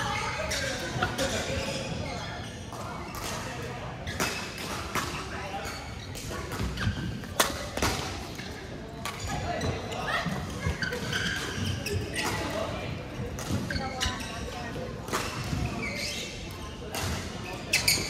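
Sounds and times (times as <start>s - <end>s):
rackets hitting shuttlecock: 4.1s - 9.4s, 15.0s - 15.8s.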